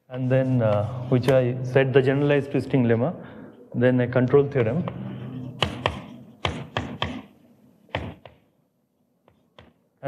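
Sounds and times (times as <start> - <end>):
chalk tapping on blackboard: 5.6 - 8.4.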